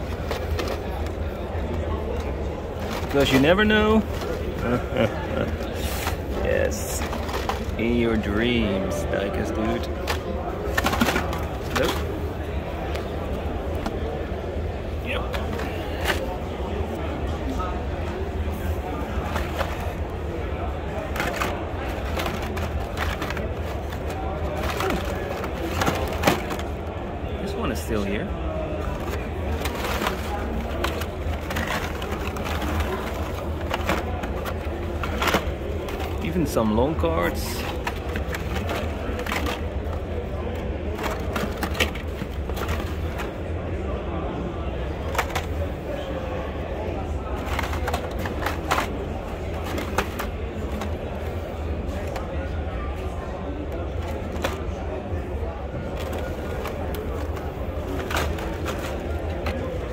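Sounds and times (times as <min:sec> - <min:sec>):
crowd talking: 0:00.0 - 0:59.9
plastic packs clicking together: 0:00.0 - 0:59.9.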